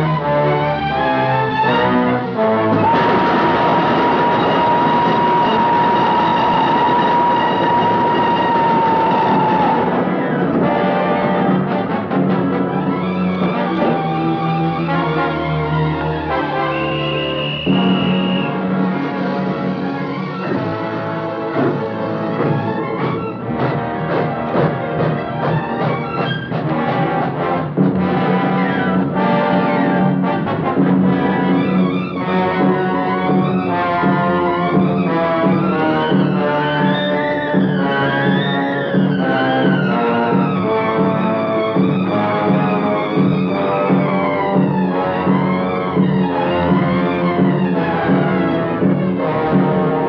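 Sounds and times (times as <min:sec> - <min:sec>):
dramatic orchestral music with brass: 0:00.0 - 0:50.0.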